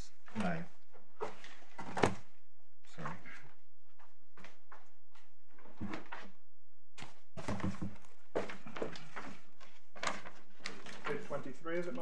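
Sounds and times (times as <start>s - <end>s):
pages turning and rustling: 1.2s - 2.3s, 7.0s - 12.0s.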